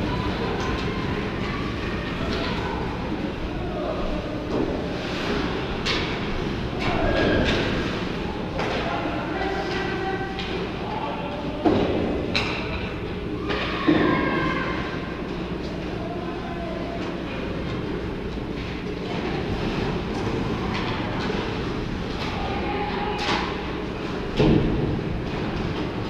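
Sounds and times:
distant echoing voices: 0.0s - 26.0s
low arena hum: 0.0s - 26.0s.

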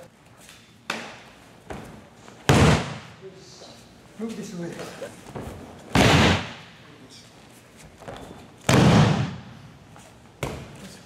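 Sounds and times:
body slapping onto mat: 8.0s - 9.4s.

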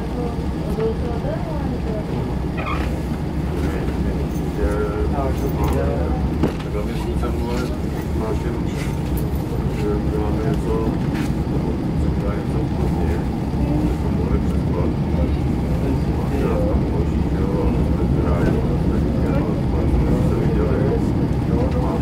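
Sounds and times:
diesel railcar running: 0.0s - 22.0s
people talking indistinctly: 0.0s - 22.0s.

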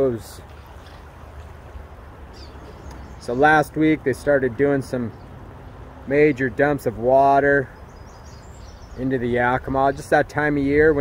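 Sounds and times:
river water rushing: 0.0s - 4.5s.

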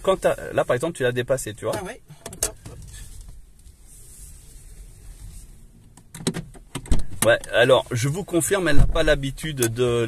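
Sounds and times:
low hum in car cabin: 0.0s - 10.0s.

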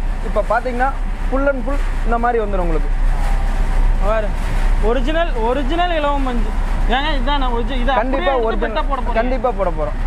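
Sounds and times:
low rumble and hum: 0.0s - 10.0s
man talking: 0.2s - 10.0s.

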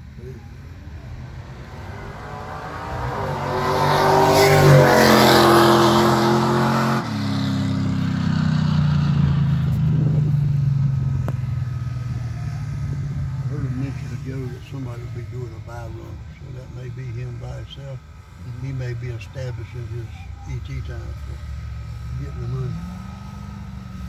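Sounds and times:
drag racing car engine: 0.0s - 24.0s.

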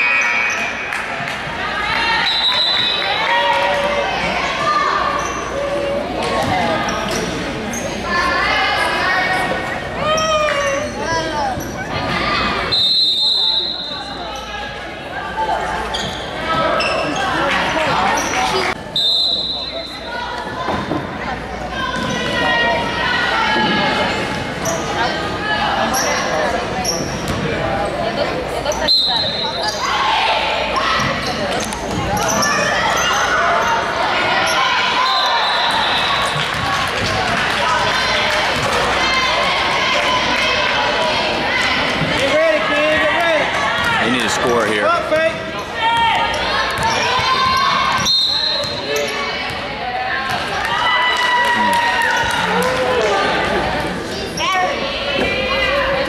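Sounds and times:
spectators talking and calling out: 0.0s - 56.0s
referee whistle blasts: 12.7s - 14.0s, 18.9s - 20.0s, 48.0s - 48.8s.

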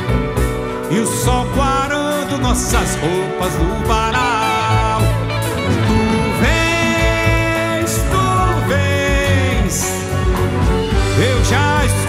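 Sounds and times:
string orchestra with guitar: 0.0s - 12.0s
man singing: 0.6s - 12.0s.

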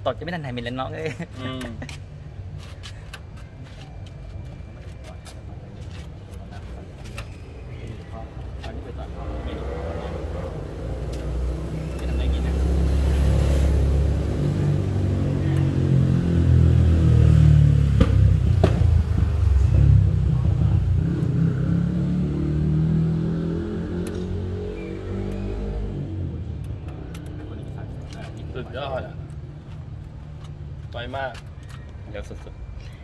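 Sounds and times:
vehicle engine passing by: 8.9s - 29.3s
sharp clicks: 26.6s - 27.4s.

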